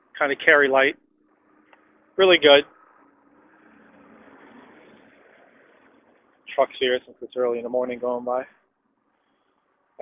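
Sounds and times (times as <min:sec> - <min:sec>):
distant truck passing: 0:01.3 - 0:06.5.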